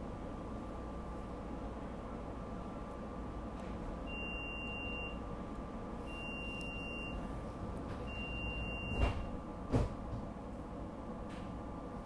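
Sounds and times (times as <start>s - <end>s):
train car hum: 0.0s - 12.0s.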